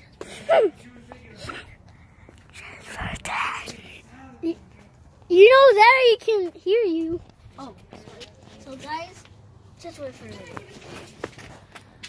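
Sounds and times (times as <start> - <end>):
breathy whisper: 1.2 - 4.1.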